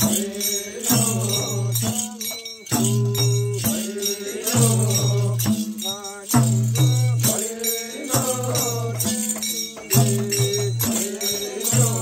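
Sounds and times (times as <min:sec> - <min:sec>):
hand cymbals shimmering: 0:00.0 - 0:12.0
voices singing: 0:00.0 - 0:12.0.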